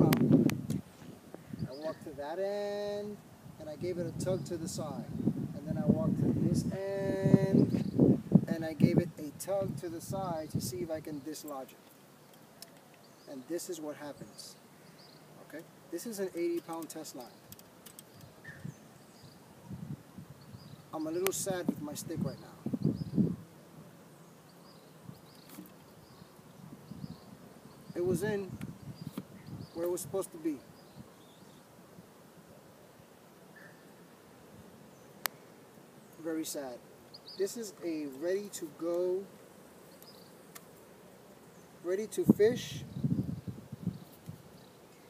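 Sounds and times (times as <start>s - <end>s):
faint insect buzzing: 0.0s - 45.0s.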